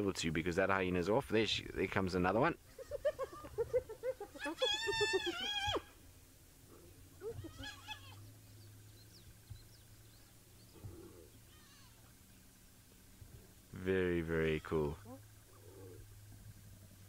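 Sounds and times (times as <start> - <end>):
hyenas giggling: 2.7 - 5.9, 6.7 - 8.2
hyena wavering cry: 4.4 - 6.0, 7.2 - 8.3.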